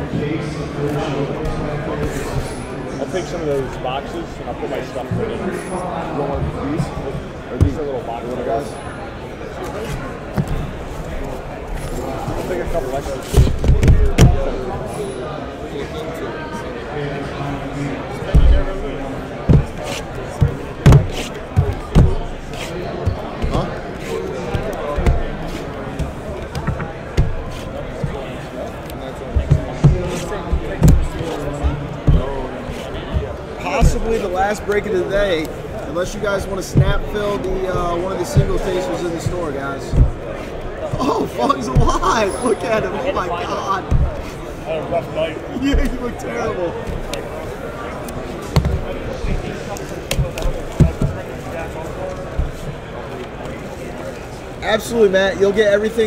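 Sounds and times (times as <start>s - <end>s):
background chatter of voices: 0.0s - 56.0s
boxes thudding on a table: 19.5s - 22.4s.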